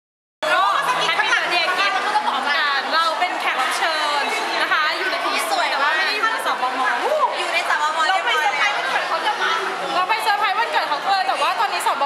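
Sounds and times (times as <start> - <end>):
young women chattering: 0.4 - 12.0.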